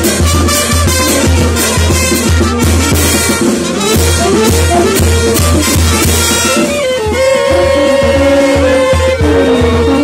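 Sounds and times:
conga drums: 0.0s - 10.0s
military brass band playing: 0.0s - 10.0s
steady low drum beat: 0.0s - 10.0s.

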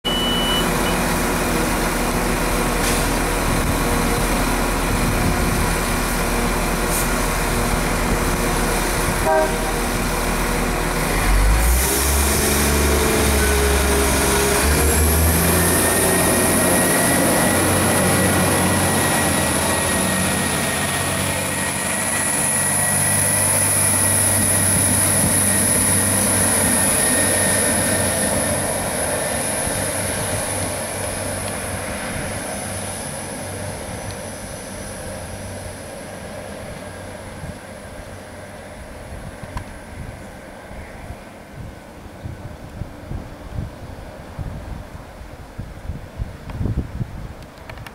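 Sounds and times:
short high beep: 0.0s - 1.0s
train diesel engines running: 0.0s - 47.9s.

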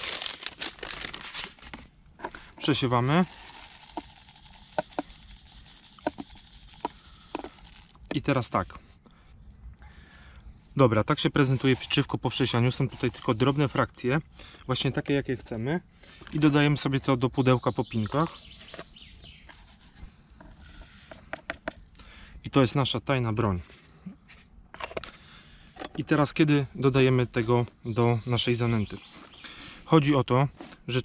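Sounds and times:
breadcrumb pouring: 0.0s - 1.3s, 2.6s - 8.1s
groundbait rubbed through sieve: 2.3s - 8.1s, 11.4s - 12.1s, 19.5s - 21.0s.

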